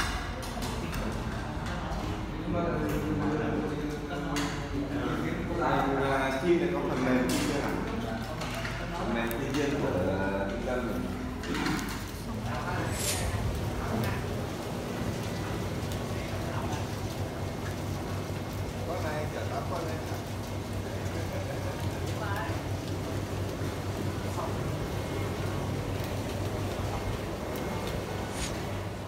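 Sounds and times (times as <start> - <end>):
steady low hum: 10.2 - 18.8.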